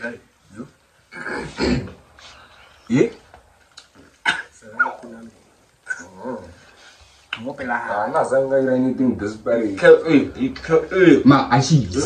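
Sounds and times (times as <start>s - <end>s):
person clearing throat: 1.1s - 2.0s, 4.2s - 5.0s.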